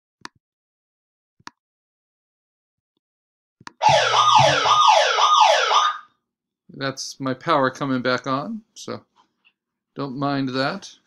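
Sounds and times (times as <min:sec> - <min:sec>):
electronic alarm warbling: 0:03.8 - 0:06.0.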